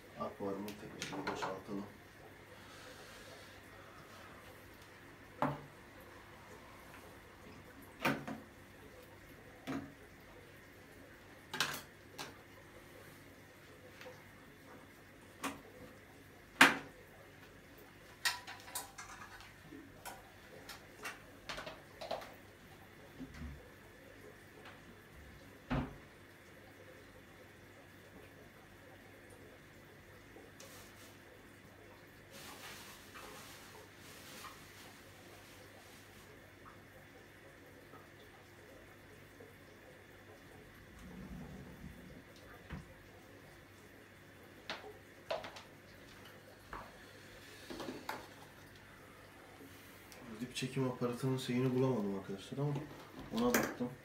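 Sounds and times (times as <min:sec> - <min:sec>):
faint low hum: 0:00.0 - 0:54.0.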